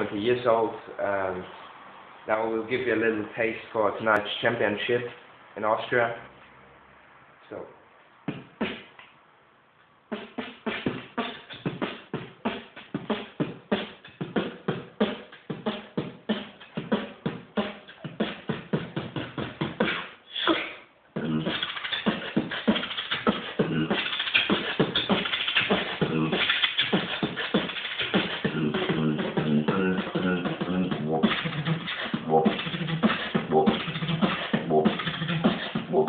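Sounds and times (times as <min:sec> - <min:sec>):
person beatboxing: 0:08.3 - 0:09.0, 0:10.1 - 0:36.0.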